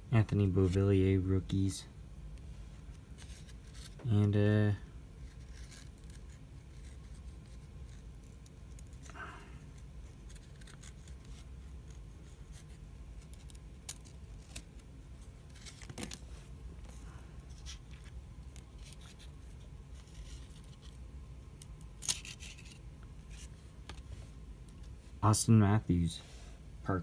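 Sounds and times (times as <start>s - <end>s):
low room hum: 0.0s - 27.0s.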